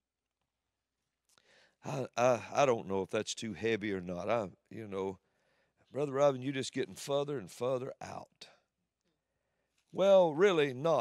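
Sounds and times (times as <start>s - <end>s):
man breathing: 1.3s - 1.8s, 5.2s - 5.9s
man speaking: 1.9s - 5.2s, 6.0s - 8.5s, 10.0s - 11.0s.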